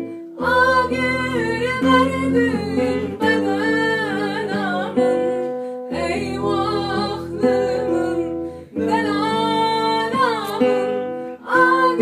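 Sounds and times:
acoustic guitar: 0.0s - 12.0s
woman singing: 0.0s - 12.0s.

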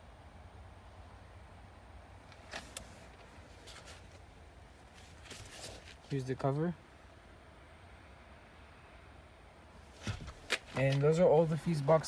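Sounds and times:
light clicks and rustles: 2.2s - 6.2s.

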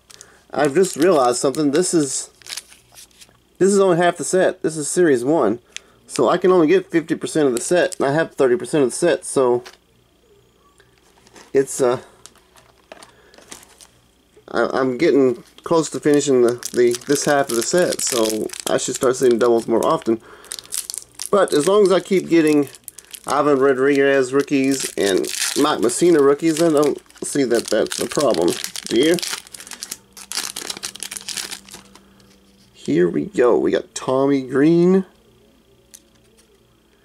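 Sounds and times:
foil wrapper crinkling: 0.1s - 3.3s, 11.0s - 14.0s, 15.3s - 32.9s.

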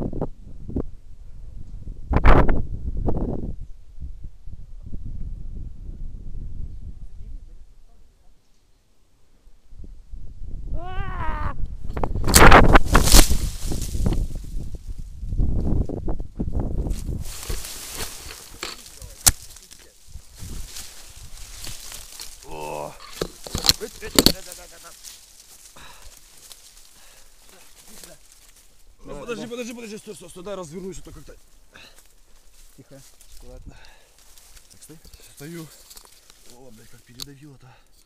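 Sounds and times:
short wavering shout: 10.7s - 11.6s
clothing rubbing on microphone: 16.7s - 22.4s.

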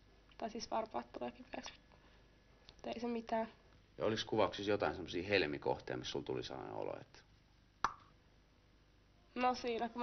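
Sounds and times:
short sharp pop: 7.8s - 8.1s.

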